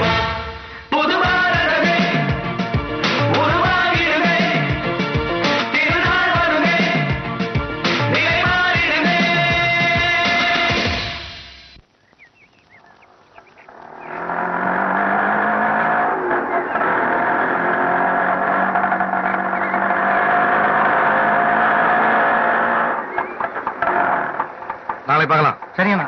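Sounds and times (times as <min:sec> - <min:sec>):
engine clatter: 0:13.7 - 0:26.0
two-stroke rickshaw engines running: 0:13.7 - 0:26.0.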